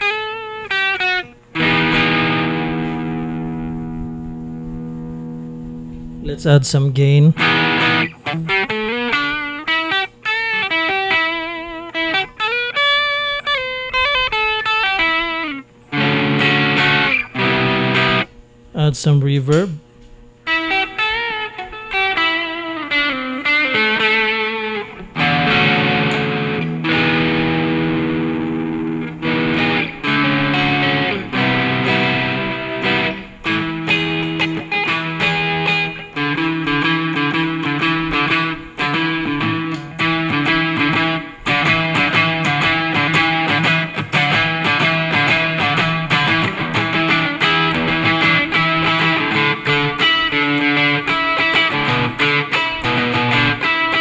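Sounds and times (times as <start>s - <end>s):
overdriven electric guitar: 0.0s - 18.7s, 19.4s - 54.0s.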